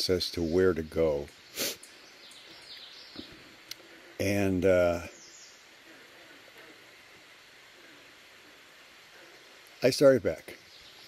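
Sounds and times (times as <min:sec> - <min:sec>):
distant birds chirping: 0:00.0 - 0:11.0.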